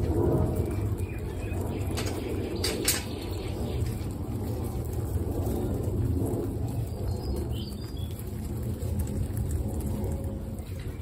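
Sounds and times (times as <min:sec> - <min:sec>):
guinea pigs chewing: 0:00.0 - 0:11.0
rustling in dry straw: 0:00.0 - 0:11.0.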